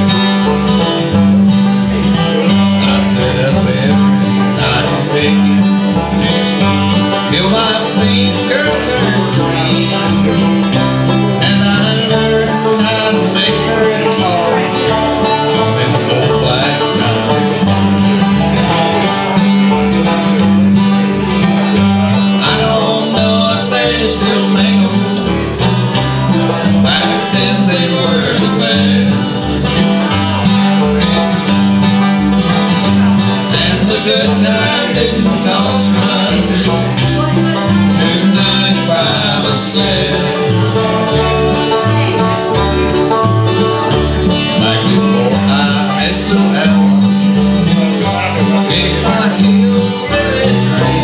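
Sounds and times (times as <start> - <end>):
banjo: 0.0 - 51.0
picked acoustic guitar: 0.0 - 51.0
upright bass plucking: 0.0 - 51.0.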